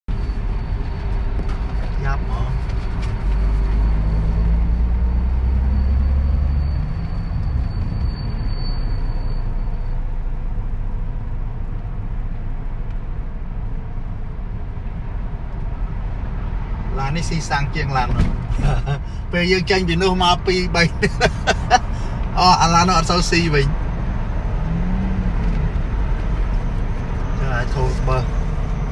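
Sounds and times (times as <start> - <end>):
car engine and tyres rumble: 0.1 - 28.9
man talking: 16.9 - 21.8, 22.4 - 23.8, 27.4 - 28.3.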